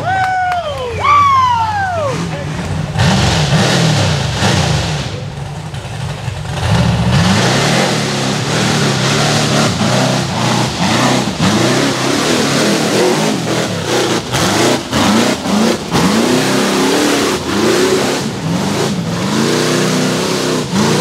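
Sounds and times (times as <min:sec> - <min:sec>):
engine revving in bursts: 0:02.2 - 0:21.0.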